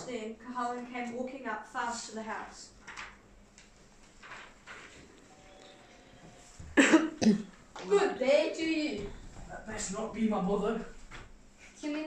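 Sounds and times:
person coughing: 6.8s - 7.5s.

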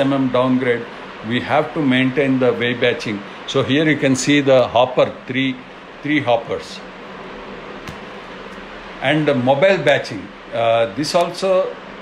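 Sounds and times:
fan-like room hum: 0.0s - 12.0s.

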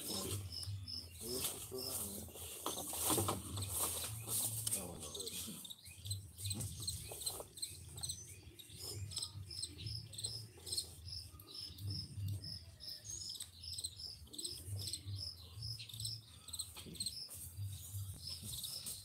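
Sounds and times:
high-pitched chirping: 5.1s - 19.0s.

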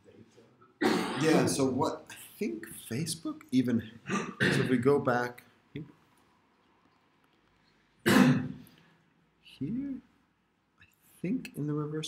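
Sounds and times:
person clearing throat: 0.8s - 1.5s, 4.1s - 4.8s, 8.0s - 8.6s.

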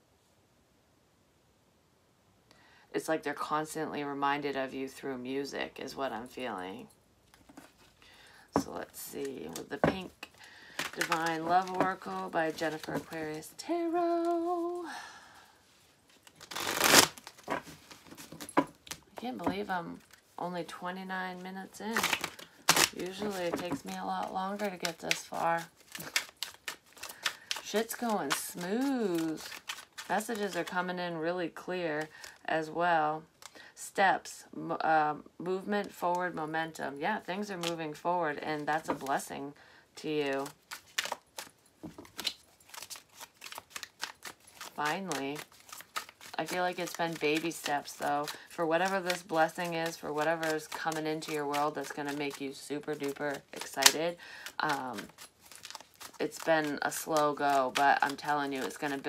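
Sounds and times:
cards being shuffled: 8.6s - 14.8s, 16.0s - 20.4s, 21.9s - 31.0s, 38.6s - 39.3s, 40.0s - 59.0s.

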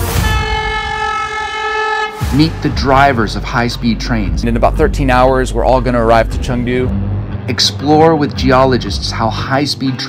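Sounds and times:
train horn long note: 0.0s - 3.0s.

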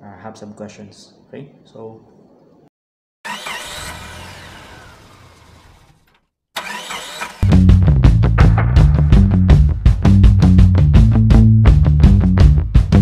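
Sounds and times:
loud rock music: 7.4s - 13.0s.

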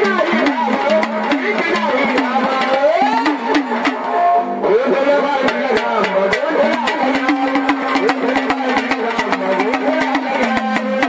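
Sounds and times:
drum beating: 0.0s - 11.0s
men singing: 4.6s - 11.0s.

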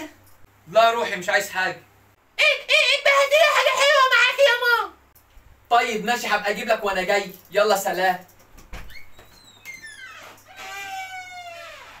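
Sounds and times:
door hinges creaking: 8.5s - 12.0s.

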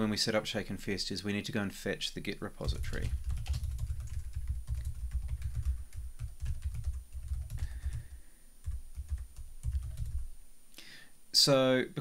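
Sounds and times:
fast typing on keyboard: 2.6s - 10.3s.

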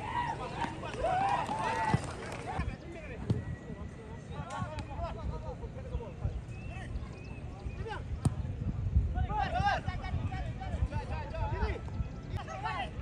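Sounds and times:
voices shouting: 0.0s - 2.7s
football being kicked: 8.2s - 8.5s.

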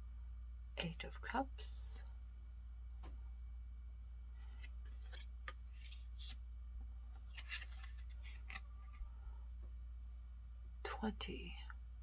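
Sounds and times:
low hum: 0.0s - 12.0s
cards clicking and rustling: 4.4s - 6.4s, 7.1s - 9.0s.

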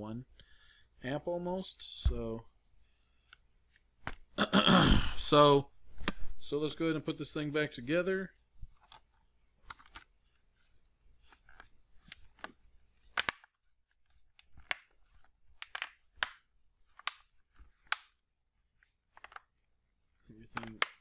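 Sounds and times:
plastic clips snapping: 13.1s - 13.5s.

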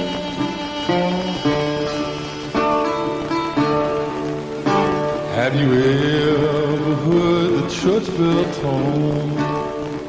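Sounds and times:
harmonica holding notes: 0.0s - 5.3s
resonator guitar strummed chords: 0.0s - 10.0s.

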